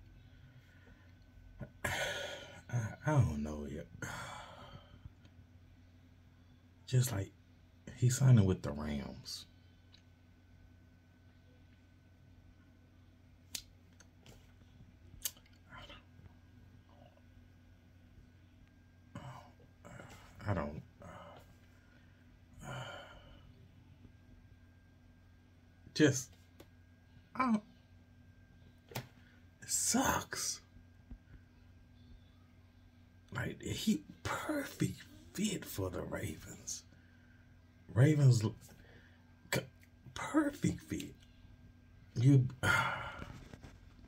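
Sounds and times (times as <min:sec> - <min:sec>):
faint steady hum: 0:00.0 - 0:44.0
man sighing: 0:01.7 - 0:02.7.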